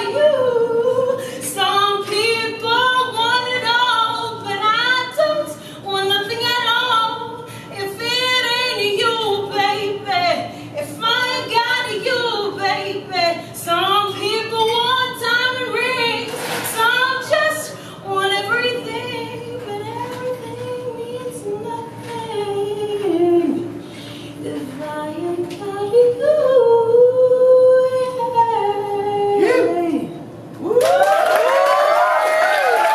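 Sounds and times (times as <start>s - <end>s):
woman singing a cappella: 0.0s - 30.8s.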